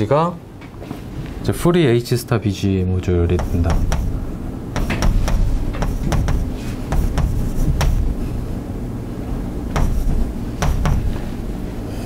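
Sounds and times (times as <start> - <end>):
chalk tapping and scraping on blackboard: 3.3 - 4.2, 4.8 - 8.2, 9.7 - 11.3.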